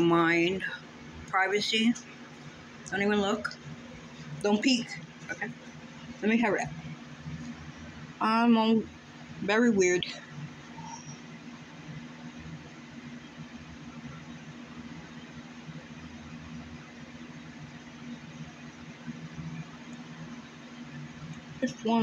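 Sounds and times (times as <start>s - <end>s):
constant hiss: 0.0s - 22.0s
low machine hum: 0.0s - 22.0s.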